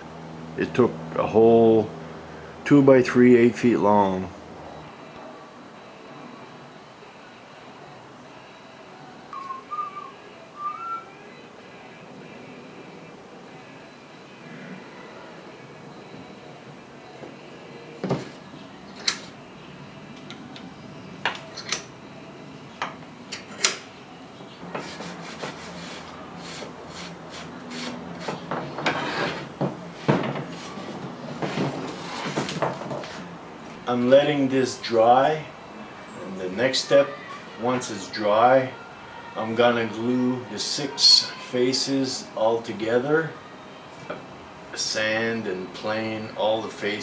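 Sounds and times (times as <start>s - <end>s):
short whistled chirp: 9.3s - 11.1s.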